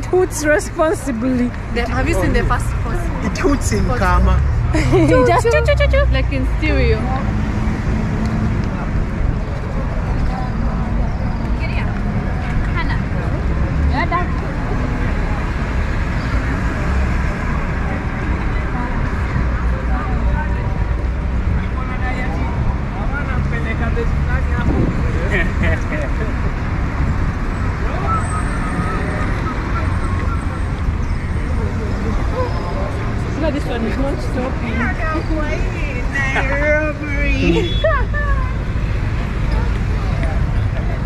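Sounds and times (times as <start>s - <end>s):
passers-by voices: 0.0s - 41.0s
rumble of passing cars and buses: 0.0s - 41.0s.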